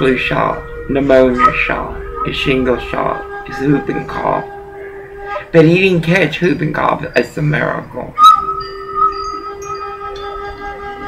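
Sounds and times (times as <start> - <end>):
wind chimes ringing: 6.9 - 11.0.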